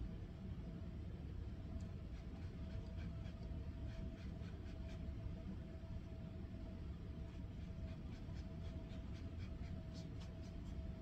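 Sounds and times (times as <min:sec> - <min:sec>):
faint constant hum: 0:00.0 - 0:11.0.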